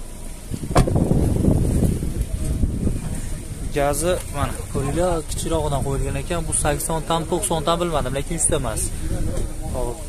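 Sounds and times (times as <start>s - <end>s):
car door shutting: 0.0s - 2.6s
wind rumbling on microphone: 0.0s - 10.0s
microphone handling noise: 0.4s - 5.9s.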